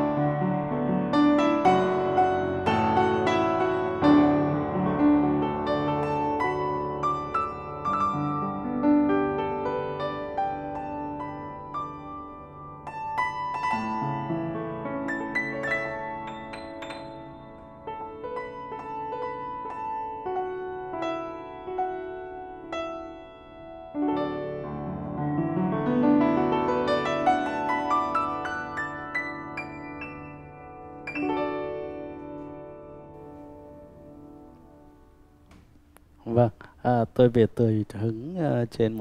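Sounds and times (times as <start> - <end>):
upright piano chords: 0.0 - 36.5.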